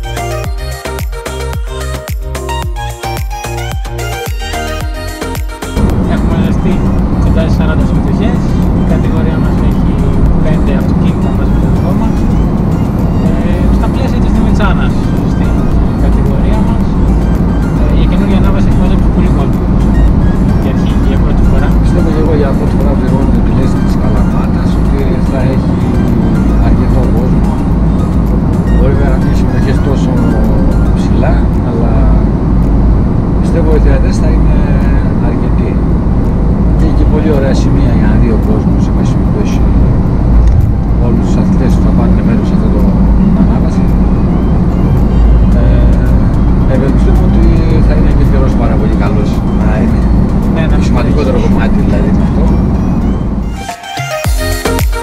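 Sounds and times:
car road and engine noise: 0:00.0 - 0:54.9
background music: 0:00.0 - 0:55.0
men talking: 0:05.8 - 0:32.6, 0:33.2 - 0:53.4.

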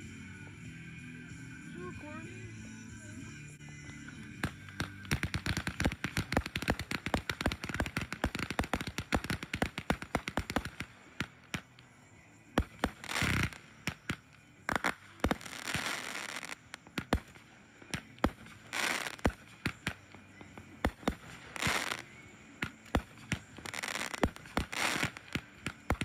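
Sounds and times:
fireworks crackling: 0:04.3 - 0:26.0
firework bursts: 0:04.4 - 0:11.9, 0:12.6 - 0:20.2, 0:20.8 - 0:26.0.

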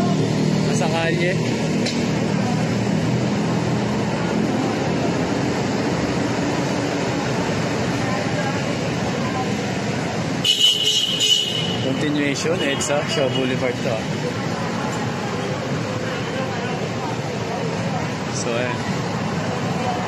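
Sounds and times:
cars driving past: 0:00.0 - 0:20.0.

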